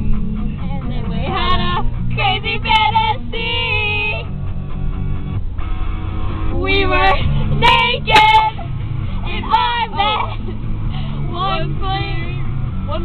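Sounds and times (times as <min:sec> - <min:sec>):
guitar pop song: 0:00.0 - 0:04.5, 0:06.4 - 0:13.0
car cabin rumble: 0:00.0 - 0:13.0
girls singing: 0:06.6 - 0:10.5, 0:11.3 - 0:12.4
girls laughing: 0:08.0 - 0:08.8, 0:09.9 - 0:10.6.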